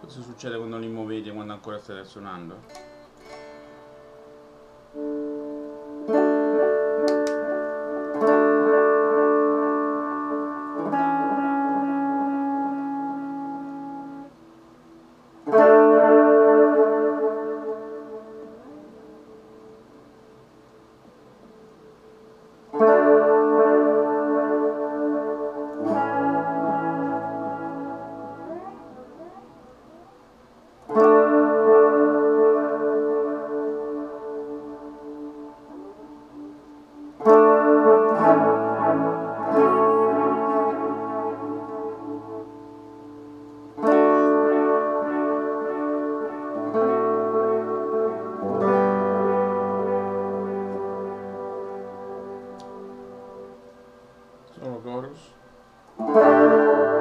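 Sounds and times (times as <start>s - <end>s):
electric guitar chords ringing: 0.0s - 57.0s.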